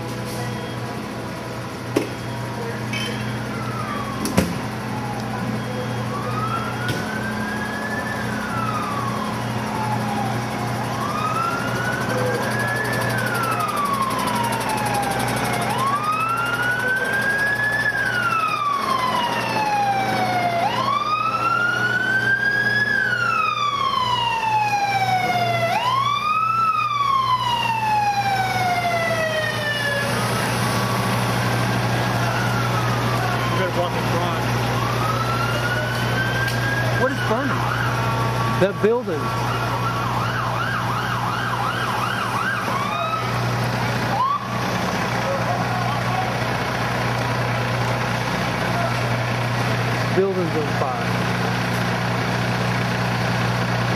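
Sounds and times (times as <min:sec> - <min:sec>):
emergency sirens wailing: 0:00.0 - 0:53.9.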